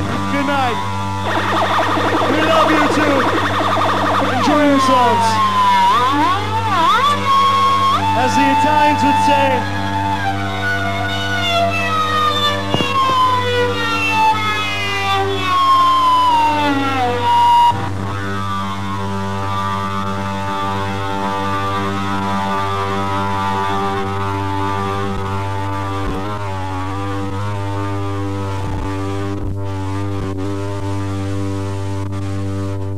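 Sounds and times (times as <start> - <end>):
droning rock chord: 0.0 - 32.8
low hum: 1.0 - 7.6
descending guitar tone: 1.2 - 8.2.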